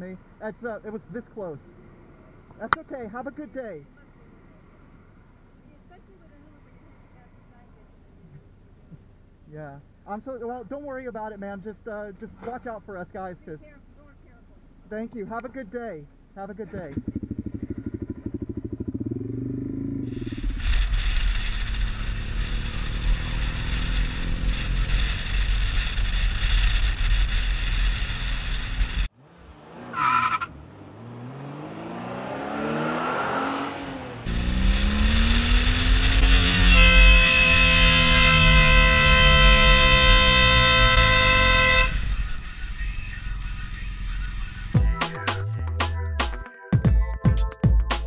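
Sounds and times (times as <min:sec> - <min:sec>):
motorcycle engine accelerating: 0:16.8 - 0:44.7
vehicle horn: 0:35.6 - 0:43.6.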